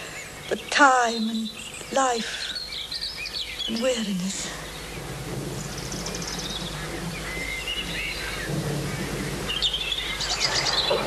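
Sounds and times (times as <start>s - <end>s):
birds chirping: 0.0s - 11.0s
steady low rumble and hiss: 0.0s - 11.0s.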